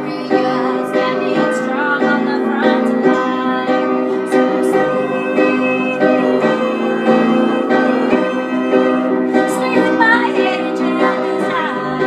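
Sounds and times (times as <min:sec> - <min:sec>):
upright piano chords: 0:00.0 - 0:12.0
woman singing: 0:00.0 - 0:12.0.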